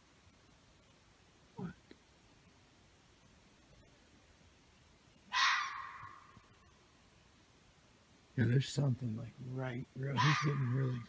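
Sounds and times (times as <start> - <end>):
hoarse animal scream: 5.3 - 6.3, 10.2 - 11.0.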